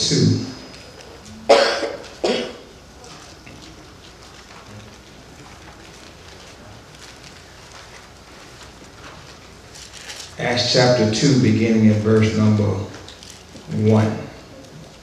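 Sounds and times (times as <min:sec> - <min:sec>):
man coughing: 0:01.5 - 0:02.7.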